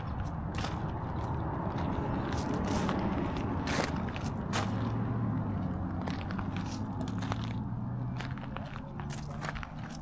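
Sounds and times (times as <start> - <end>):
footsteps crunching: 0.0 - 10.0.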